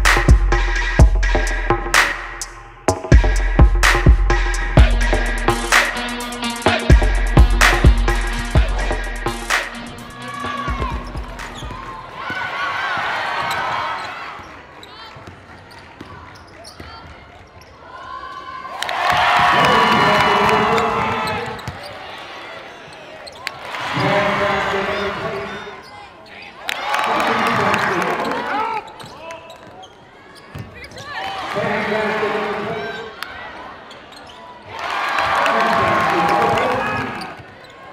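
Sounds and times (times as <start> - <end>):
crowd cheering and shouting: 3.2 - 14.5, 17.8 - 22.8, 23.6 - 25.8, 26.6 - 28.9, 34.5 - 37.9
sneakers squeaking: 9.5 - 26.7, 27.4 - 35.3, 36.5 - 37.9.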